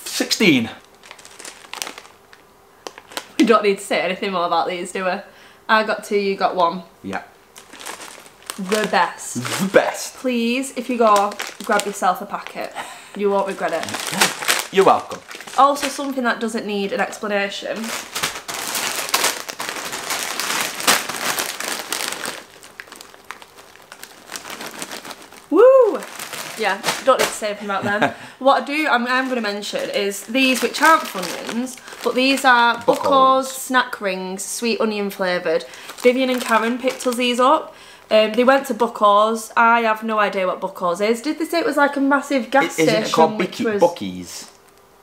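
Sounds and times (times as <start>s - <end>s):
plastic packets crinkling: 0.8s - 3.4s, 7.5s - 10.2s, 10.8s - 16.2s, 17.7s - 33.6s, 35.0s - 38.6s.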